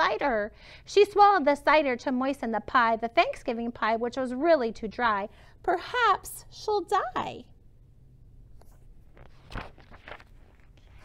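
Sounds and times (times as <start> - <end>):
book page turning: 8.6 - 11.0.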